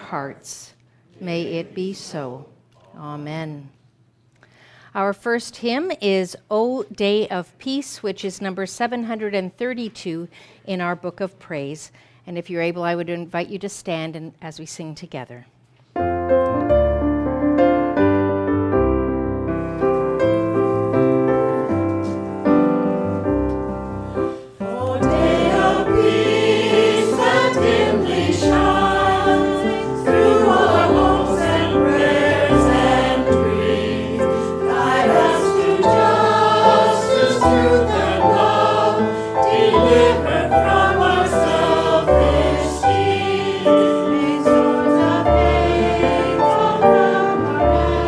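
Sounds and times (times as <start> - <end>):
digital piano accompaniment: 16.0 - 48.0
congregation singing a hymn: 24.1 - 48.0.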